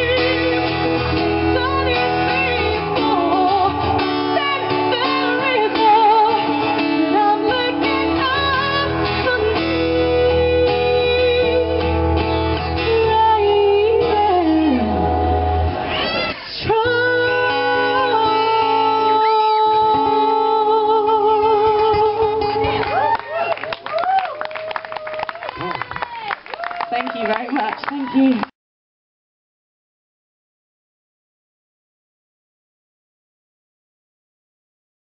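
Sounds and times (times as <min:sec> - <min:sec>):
woman singing with vibrato: 0:00.0 - 0:12.0, 0:12.8 - 0:15.2, 0:16.5 - 0:23.1
acoustic guitar: 0:00.0 - 0:23.8.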